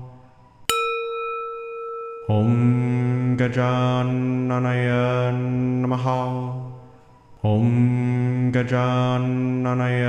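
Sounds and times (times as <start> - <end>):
metal bell ringing: 0.7 - 3.0
chanting voice: 2.1 - 10.0.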